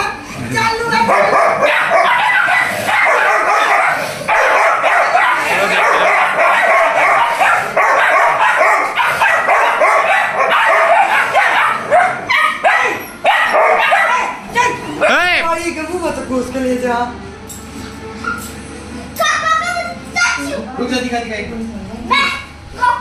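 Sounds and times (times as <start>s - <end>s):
puppies yipping and barking: 1.0s - 14.5s, 18.2s - 18.6s.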